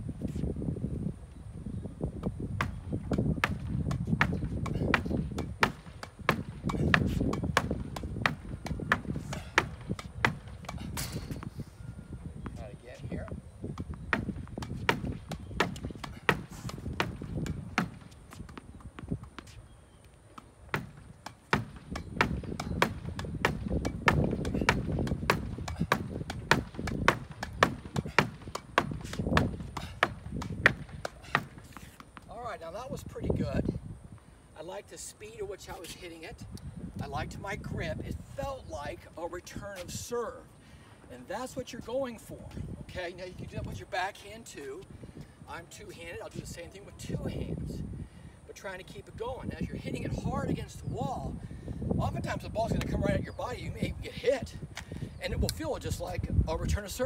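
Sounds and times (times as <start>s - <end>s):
tennis ball knocks: 2.6s - 11.5s, 13.8s - 19.6s, 20.3s - 32.3s.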